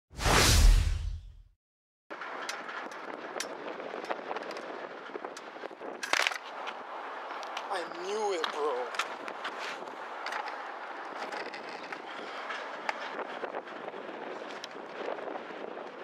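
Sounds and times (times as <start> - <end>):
loud whoosh with deep rumble: 0.2 - 1.4
outdoor background noise: 2.1 - 16.0
person speaking: 7.7 - 9.0.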